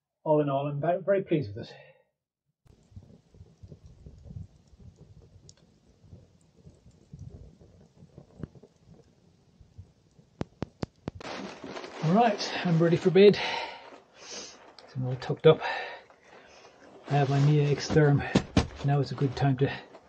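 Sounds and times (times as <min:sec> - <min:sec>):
wood fire crackling: 0:02.7 - 0:20.0.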